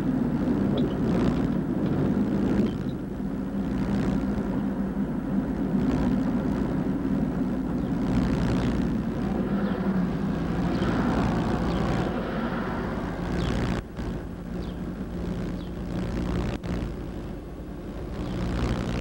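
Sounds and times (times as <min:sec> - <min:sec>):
car engine drone: 0:00.0 - 0:19.0
road noise inside car: 0:00.0 - 0:19.0.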